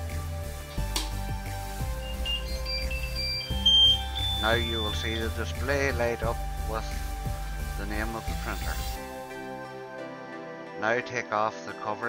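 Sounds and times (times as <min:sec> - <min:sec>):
background music: 0:00.0 - 0:12.0
high electronic beeps: 0:01.8 - 0:06.9.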